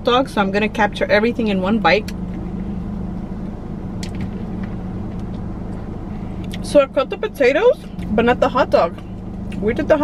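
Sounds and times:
car idling hum: 0.0s - 10.0s.

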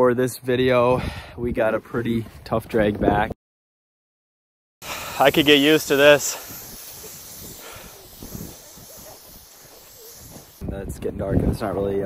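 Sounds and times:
wind noise on microphone: 0.9s - 3.4s, 4.8s - 12.0s.

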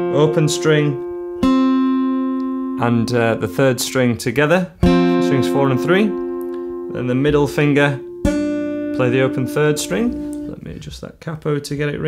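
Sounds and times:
acoustic guitar note ringing: 0.0s - 10.6s.

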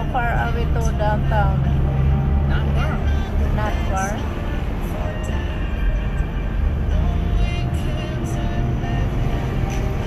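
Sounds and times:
car driving rumble: 0.0s - 10.0s
music playing: 0.0s - 10.0s.

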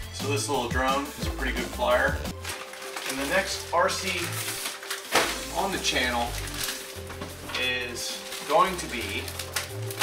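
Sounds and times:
electronic background music: 0.0s - 10.0s
man talking: 0.2s - 2.3s, 3.1s - 4.4s, 5.4s - 6.4s, 7.5s - 9.3s.

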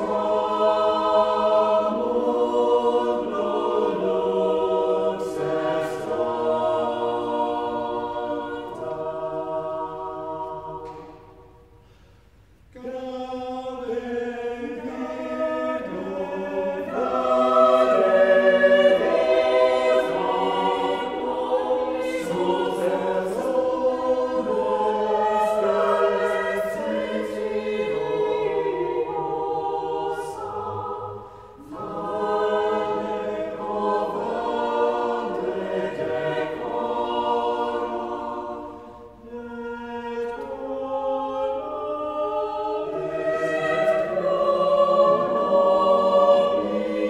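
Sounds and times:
church choir singing: 0.0s - 47.0s.

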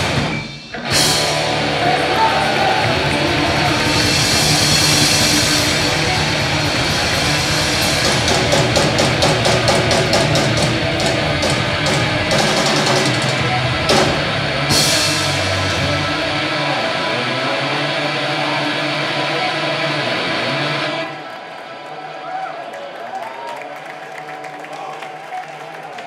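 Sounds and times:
live rock band playing: 0.0s - 21.1s
fast drum hits: 0.9s - 15.7s.

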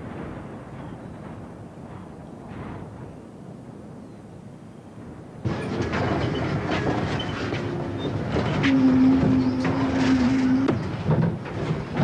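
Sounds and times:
large vehicle rattling by: 5.4s - 12.0s.

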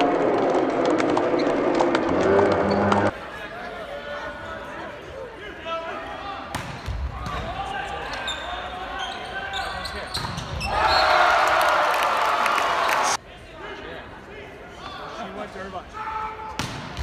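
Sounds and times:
crowd cheering: 0.0s - 3.2s, 10.6s - 13.2s.

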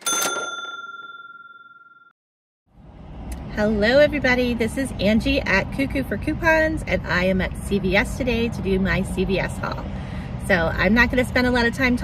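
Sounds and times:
bell-like chime ringing: 0.0s - 2.1s.

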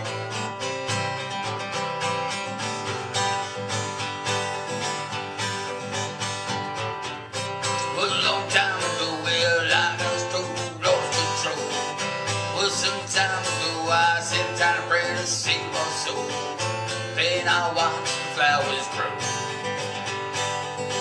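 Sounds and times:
acoustic guitar strumming: 0.0s - 21.0s
wordless vocal line: 7.6s - 19.5s.

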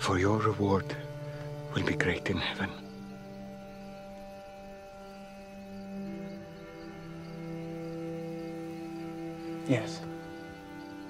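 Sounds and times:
soft sustained background chords: 0.0s - 11.0s.

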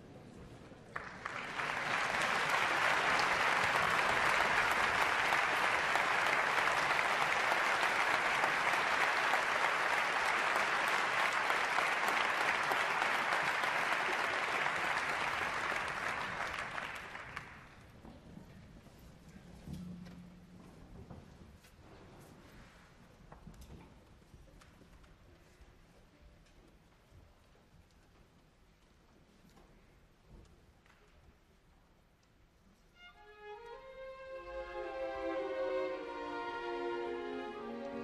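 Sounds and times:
audience applauding: 0.9s - 17.8s.

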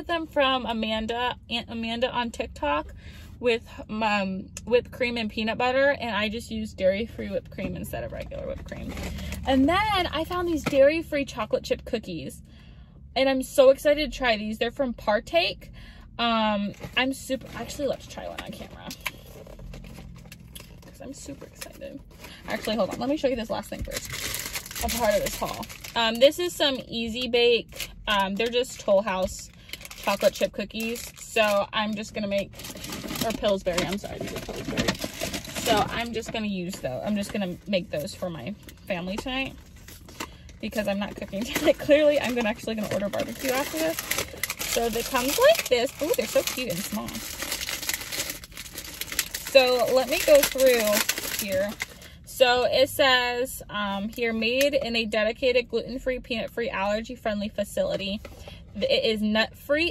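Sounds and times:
plastic packaging crinkling: 16.7s - 26.4s, 27.6s - 52.1s.

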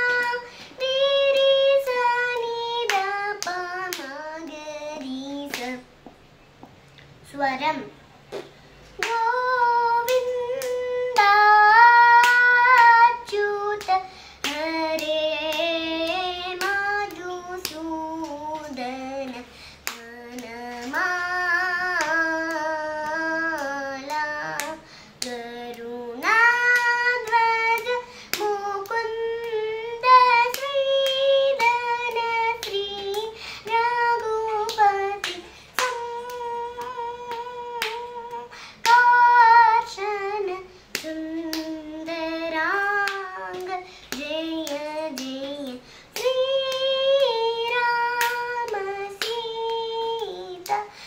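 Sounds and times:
girl singing with sliding ornaments: 0.0s - 51.0s.

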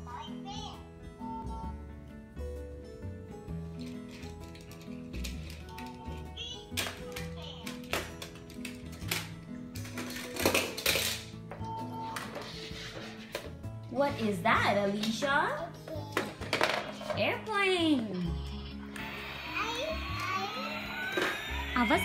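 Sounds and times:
light background music: 0.0s - 22.0s
plastic toys knocking: 6.8s - 11.6s, 15.9s - 17.3s.

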